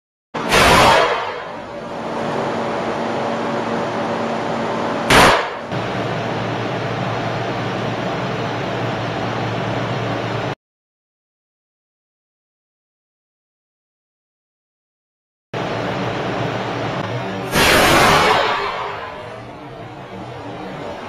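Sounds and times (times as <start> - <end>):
shotgun shots: 0.5 - 1.5, 5.1 - 5.6
faint hum: 15.6 - 21.0.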